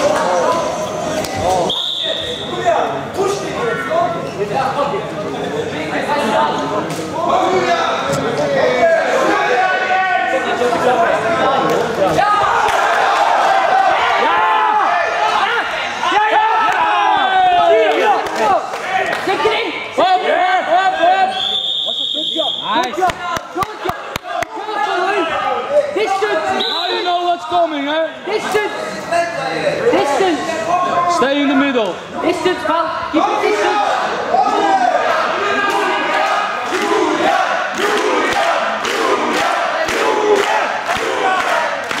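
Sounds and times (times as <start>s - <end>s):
high whistle blast: 1.6s - 2.5s, 21.3s - 22.8s
people shouting in a hall: 7.2s - 27.5s, 32.8s - 42.0s.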